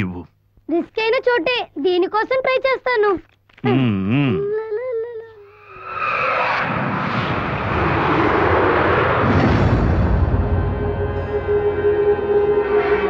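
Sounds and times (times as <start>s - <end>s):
loud rushing dramatic swell: 5.5s - 13.0s.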